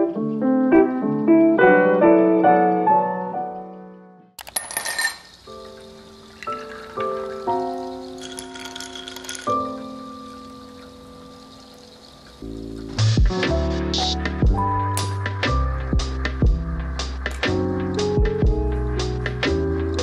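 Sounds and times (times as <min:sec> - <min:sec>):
soft piano music: 0:00.0 - 0:04.4, 0:05.4 - 0:20.0
ice clinking against glass: 0:04.4 - 0:05.4, 0:06.3 - 0:09.9
liquid pouring into glass: 0:06.3 - 0:09.8.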